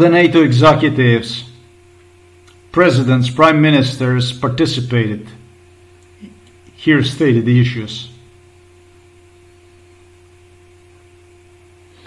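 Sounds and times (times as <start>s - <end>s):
background hum: 0.0s - 12.0s.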